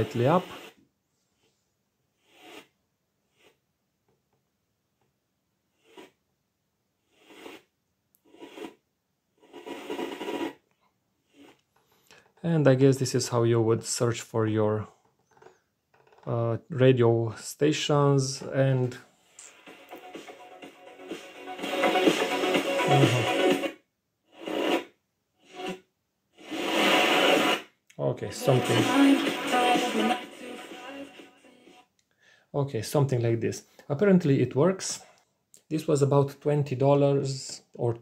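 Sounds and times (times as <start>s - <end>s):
radio static bursts: 0.0s - 0.7s, 21.7s - 23.6s, 26.4s - 27.6s, 28.4s - 31.0s.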